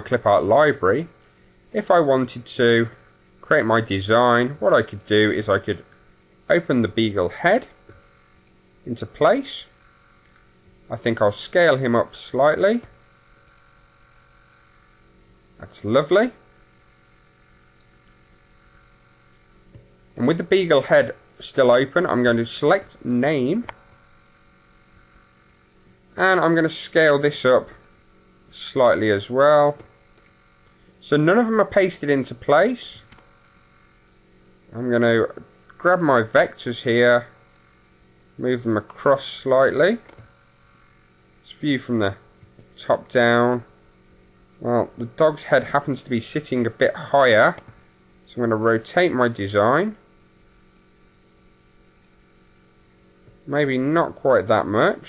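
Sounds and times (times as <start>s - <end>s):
light electrical hum: 0.0s - 55.0s
low hiss: 0.0s - 55.0s.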